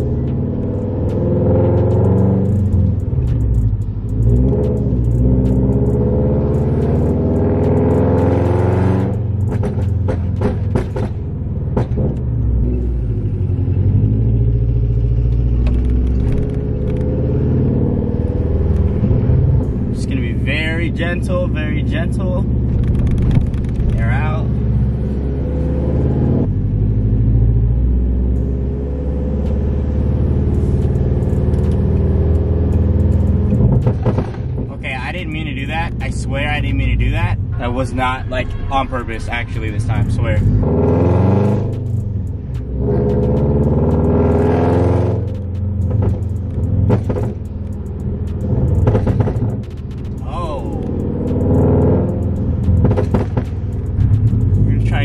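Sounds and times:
car engine revving: 0:00.0 - 0:55.0
exhaust pops and crackles: 0:01.0 - 0:12.4, 0:18.7 - 0:24.5, 0:29.4 - 0:37.4, 0:41.4 - 0:55.0.

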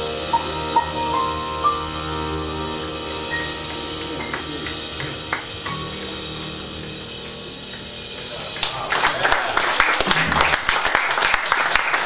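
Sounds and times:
cymbal hiss: 0:00.0 - 0:10.7
jazz quartet sustained chord: 0:00.0 - 0:10.7.

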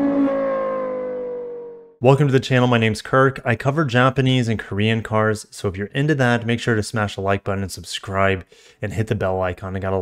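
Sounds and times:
car engine rev winding down: 0:00.0 - 0:02.0.

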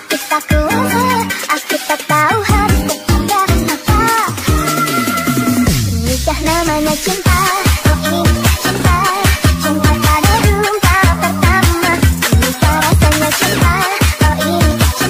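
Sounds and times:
loud electronic dance music: 0:00.0 - 0:15.0.

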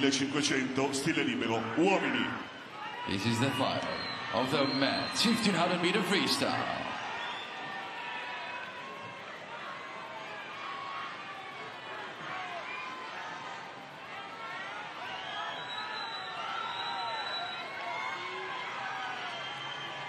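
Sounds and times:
shouts and cheers: 0:01.6 - 0:20.0.

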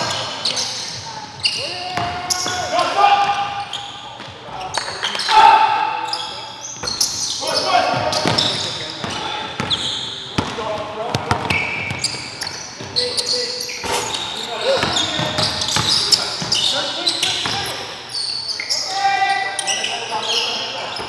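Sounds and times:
players calling out: 0:00.0 - 0:21.0
sneakers squeaking: 0:00.0 - 0:21.0.

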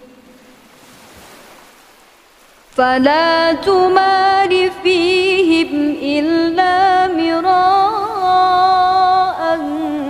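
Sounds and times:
faint steady rushing noise: 0:00.0 - 0:10.0.

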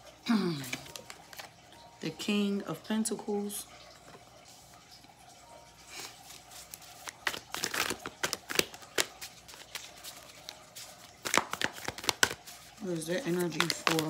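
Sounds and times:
cards being shuffled: 0:00.6 - 0:01.6, 0:06.2 - 0:14.0.

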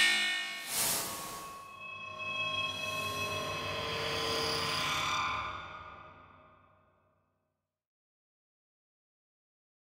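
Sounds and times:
whoosh: 0:00.0 - 0:01.6.

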